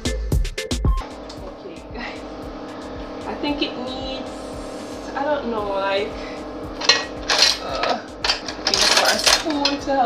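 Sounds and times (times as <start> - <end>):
blender motor humming: 1.0 - 10.0.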